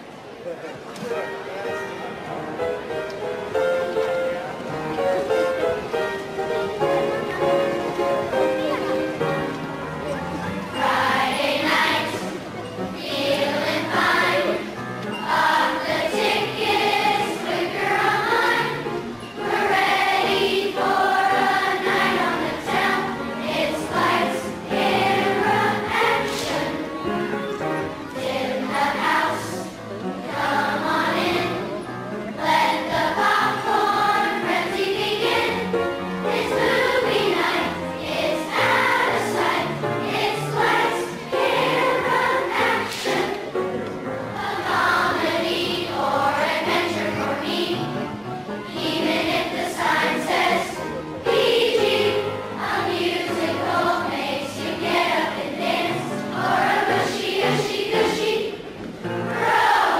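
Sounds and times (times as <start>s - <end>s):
instrumental accompaniment: 1.1s - 59.9s
children's choir singing: 1.2s - 59.9s.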